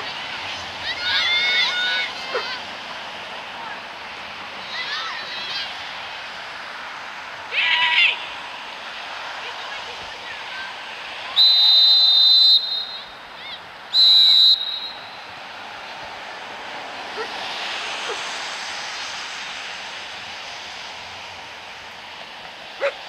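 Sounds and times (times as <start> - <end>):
outdoor background noise: 0.0 - 23.0
referee's whistle blasts: 11.4 - 13.2, 13.9 - 15.2.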